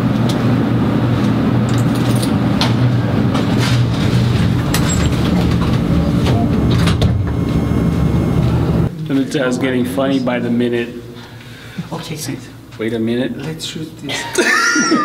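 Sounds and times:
elevator rumble and hum: 0.0 - 13.2
elevator clicks and rattles: 1.7 - 7.6.

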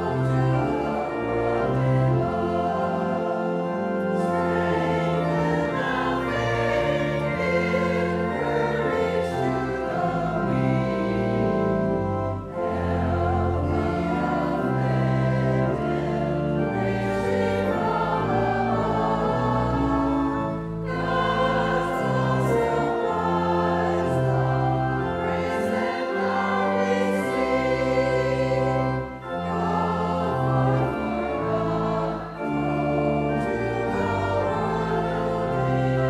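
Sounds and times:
congregation and choir singing hymn: 0.0 - 36.0
organ chords: 0.0 - 36.0.

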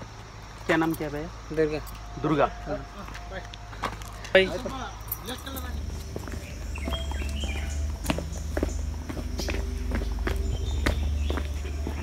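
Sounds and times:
footsteps on stone: 1.8 - 12.0.

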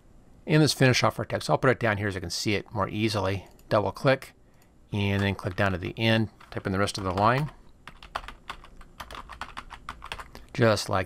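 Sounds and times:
typing on computer keyboard: 6.4 - 10.3.

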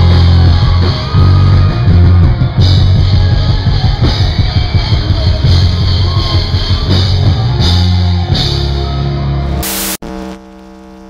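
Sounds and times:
live rock music: 0.0 - 11.0
loud static hiss: 9.5 - 11.0.

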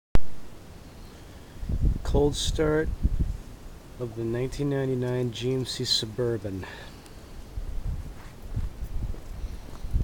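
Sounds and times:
low hiss: 0.2 - 10.0
low rumbling on microphone: 1.6 - 3.6, 7.5 - 10.0.

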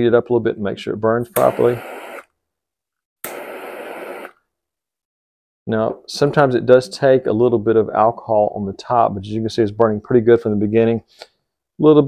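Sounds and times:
torch lighter hissing flame: 1.4 - 2.2, 3.3 - 4.3.

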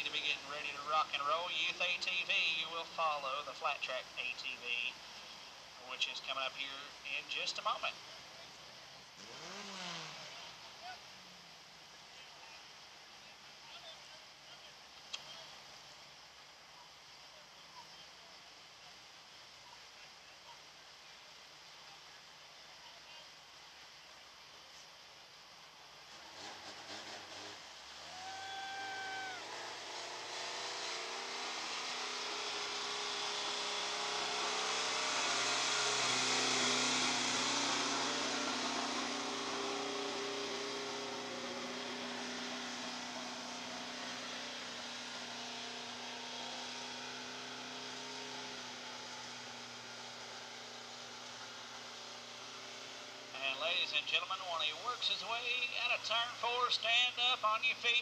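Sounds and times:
race car engine passing: 9.2 - 11.6, 26.1 - 56.9.

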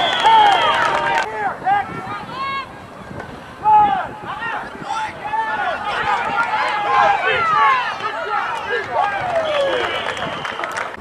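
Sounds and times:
people shouting: 0.0 - 2.7, 3.6 - 10.2.

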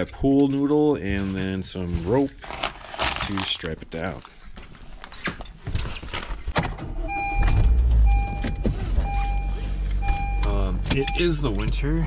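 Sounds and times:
car engine starting and idling: 6.7 - 12.0
dashboard warning chime beeping: 7.1 - 11.9.

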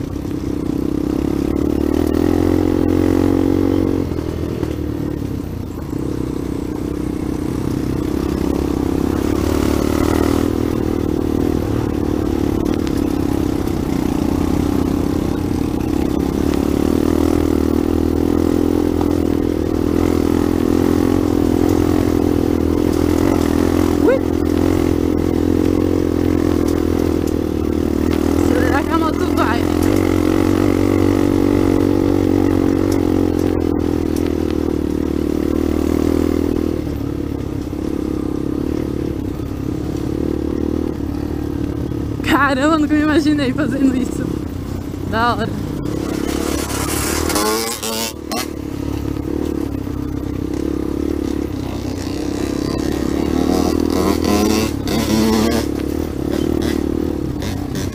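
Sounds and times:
dirt bike engine running: 0.0 - 57.9.

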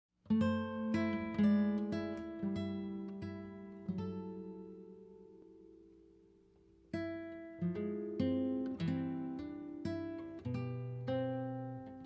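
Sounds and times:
acoustic guitar plucked notes: 0.2 - 12.0.

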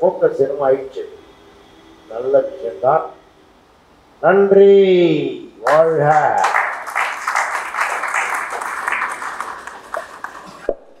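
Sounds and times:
audience applauding: 5.6 - 10.7.

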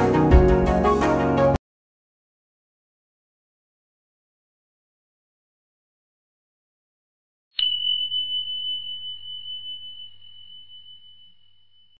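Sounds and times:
high bell-like chime: 7.6 - 12.0.

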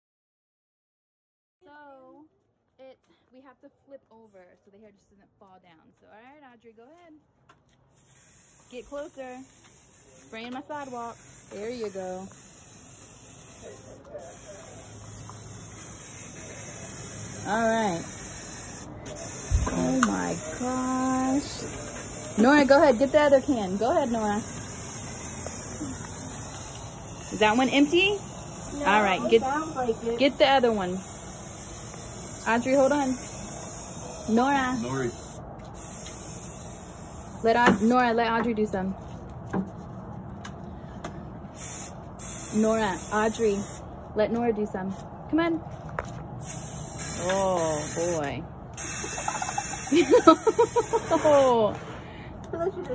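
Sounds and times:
aerosol can spraying: 8.0 - 30.0, 30.6 - 38.0, 41.6 - 43.8, 46.4 - 51.6.

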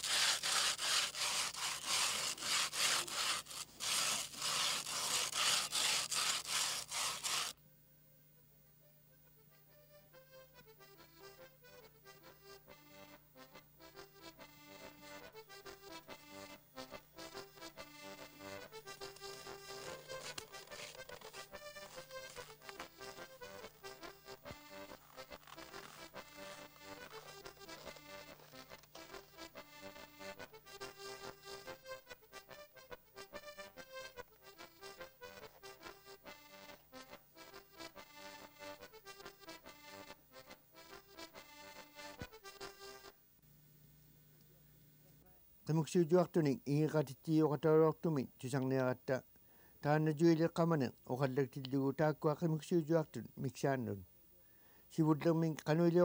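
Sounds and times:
instrumental tune: 9.4 - 43.2.

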